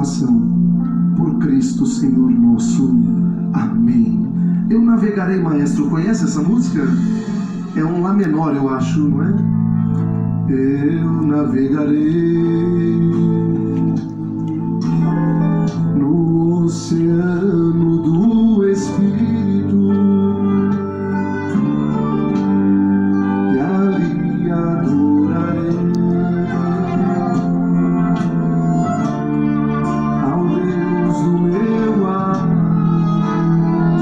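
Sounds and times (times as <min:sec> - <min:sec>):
acoustic guitar: 0:00.0 - 0:34.0
man singing a slow song: 0:01.2 - 0:09.5, 0:10.5 - 0:22.0, 0:23.4 - 0:28.1, 0:30.0 - 0:34.0
accordion: 0:06.2 - 0:34.0.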